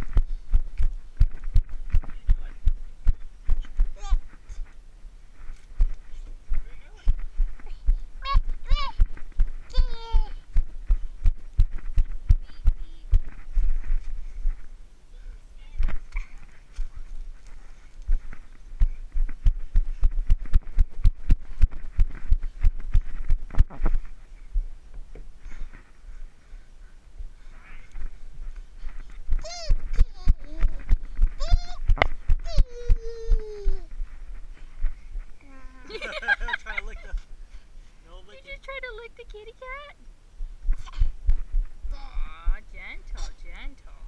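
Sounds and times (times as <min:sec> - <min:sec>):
low thumping: 0:00.0 - 0:04.7, 0:05.8 - 0:14.8, 0:15.8 - 0:26.2, 0:40.0 - 0:43.6
high-pitched vocal calls: 0:29.4 - 0:30.7, 0:31.3 - 0:33.7
small animal crying: 0:31.4 - 0:33.4.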